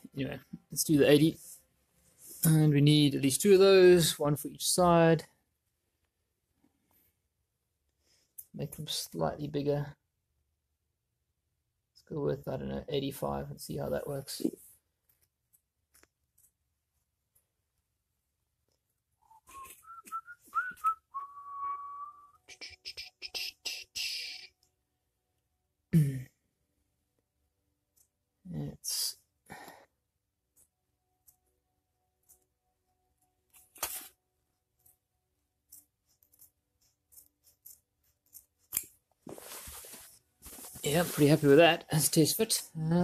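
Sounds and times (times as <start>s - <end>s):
man whistling: 19.2s - 23.4s
scissors snipping felt: 35.6s - 39.1s
scratchy rustling of felt mat: 39.2s - 41.6s.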